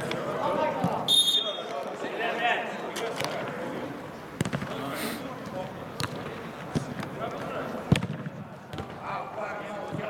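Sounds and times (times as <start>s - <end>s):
football kicks in hall: 4.4s - 4.8s, 7.8s - 9.2s.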